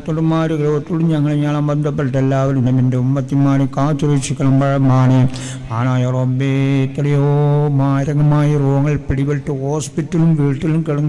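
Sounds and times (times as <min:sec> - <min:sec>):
man chanting a prayer: 0:00.0 - 0:11.0.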